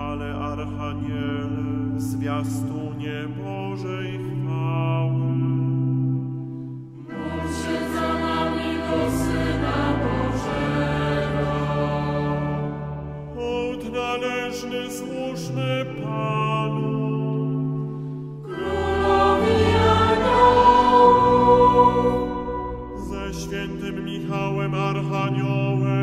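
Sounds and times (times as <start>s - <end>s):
choir chanting: 7.0s - 13.9s, 18.4s - 23.9s.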